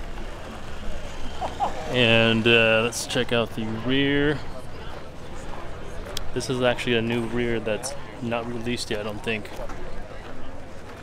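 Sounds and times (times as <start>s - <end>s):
faint chatter of voices: 0.0s - 11.0s.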